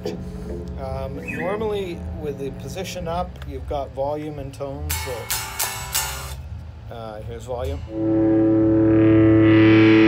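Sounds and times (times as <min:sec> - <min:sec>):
low amp hum: 0:00.0 - 0:10.0
electric guitar strumming: 0:04.9 - 0:06.4, 0:07.7 - 0:10.0.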